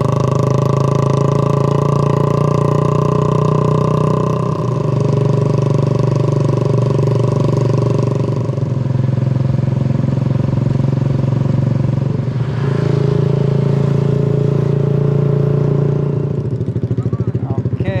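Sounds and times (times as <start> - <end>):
motorbike engine running: 0.0 - 18.0.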